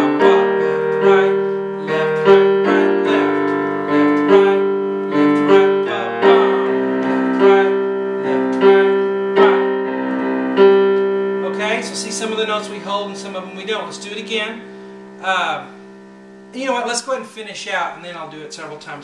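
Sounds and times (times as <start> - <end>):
person's voice: 0.0 - 3.6, 4.3 - 9.7, 11.4 - 15.8, 16.6 - 19.0
slow piano chords: 0.0 - 19.0.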